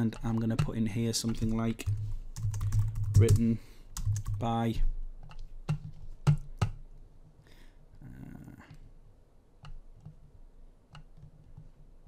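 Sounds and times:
keyboard and mouse clicks: 0.0s - 4.5s, 5.2s - 6.8s, 9.6s - 10.3s, 10.9s - 11.8s.

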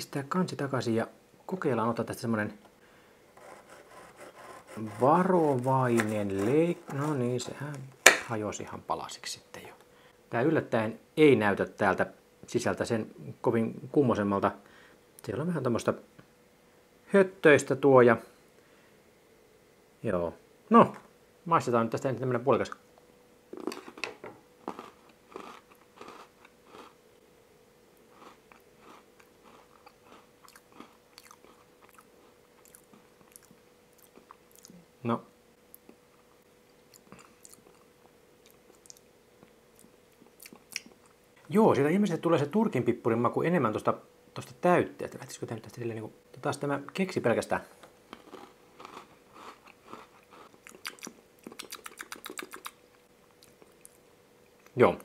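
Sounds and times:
crunchy biscuit bites and chewing: 23.6s - 27.0s, 28.0s - 34.8s, 48.1s - 52.8s.

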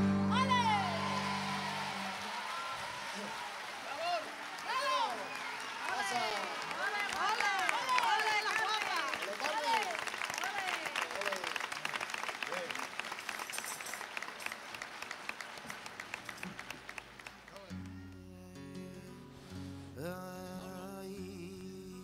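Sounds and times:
audience applause and cheers: 0.0s - 18.1s
solo flamenco guitar: 17.4s - 22.0s.

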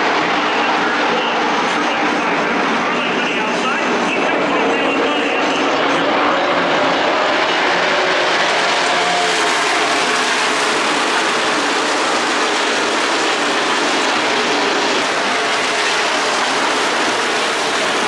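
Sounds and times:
race cars engine roar: 0.0s - 18.0s.

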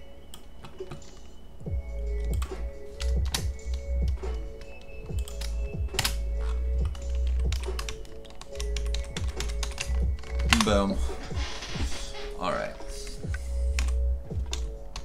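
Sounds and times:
background music: 0.0s - 15.0s
computer keyboard typing: 0.3s - 1.4s, 2.2s - 11.4s, 13.2s - 15.0s.

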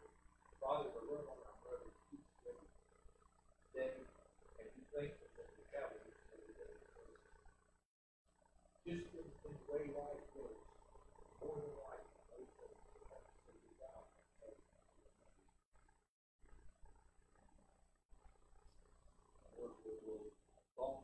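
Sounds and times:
man praying softly: 0.6s - 1.9s, 4.6s - 7.2s, 8.9s - 10.6s, 11.4s - 14.6s, 19.6s - 21.0s.

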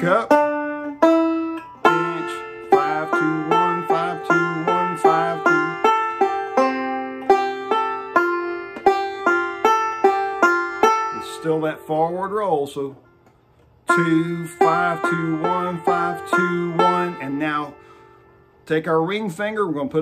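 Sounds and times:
banjo picking: 0.0s - 13.1s, 13.7s - 20.0s.

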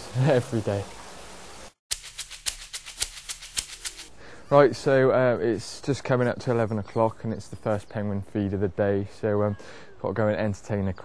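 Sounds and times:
sharp ticking clicks: 1.9s - 4.1s.

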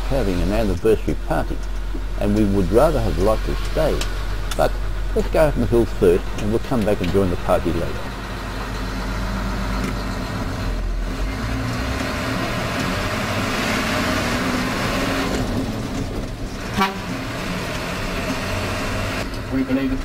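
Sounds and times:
diesel coach engine accelerating: 0.0s - 20.0s
horn toot: 16.6s - 17.2s.

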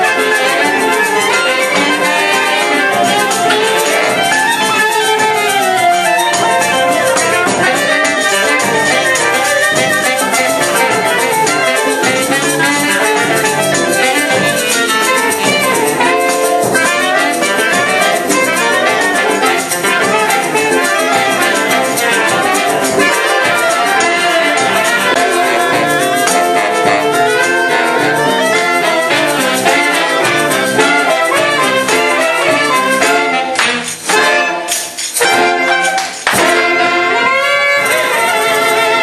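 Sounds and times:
wind ensemble playing: 0.0s - 39.0s.

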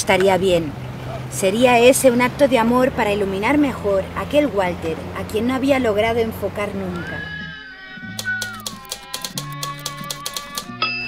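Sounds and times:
background music: 5.0s - 11.0s
typewriter keys clacking: 8.2s - 10.7s.

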